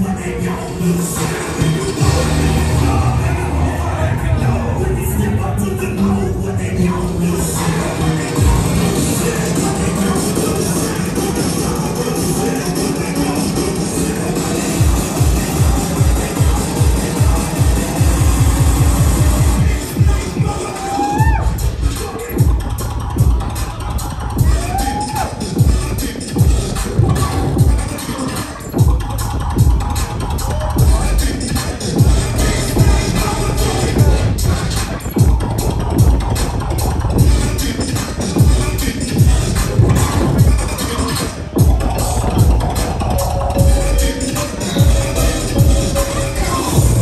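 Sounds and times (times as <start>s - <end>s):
electronic bass music: 0.0s - 47.0s
deep kick drums: 22.4s - 23.6s, 32.0s - 37.7s, 41.6s - 44.1s, 44.8s - 46.1s, 46.8s - 47.0s
heavy bass hits dropping in pitch: 41.6s - 44.2s.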